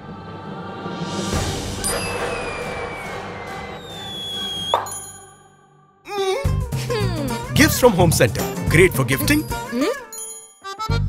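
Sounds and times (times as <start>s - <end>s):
rising spinning tone: 1.4s - 5.3s.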